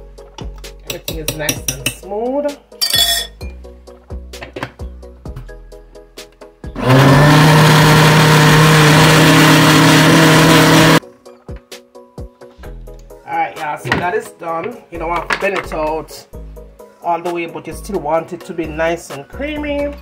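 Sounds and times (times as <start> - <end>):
blender motor running: 6.8 - 11.0.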